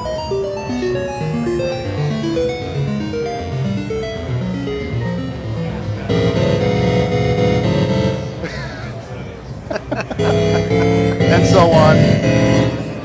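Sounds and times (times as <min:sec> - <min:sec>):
synthesizer chord: 0:00.0 - 0:08.5, 0:10.1 - 0:13.0
synthesizer organ notes: 0:00.0 - 0:13.0.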